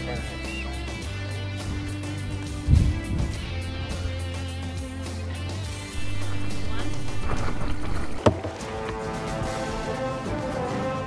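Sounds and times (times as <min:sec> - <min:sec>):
background music: 0:00.0 - 0:11.0
person speaking: 0:06.0 - 0:07.9.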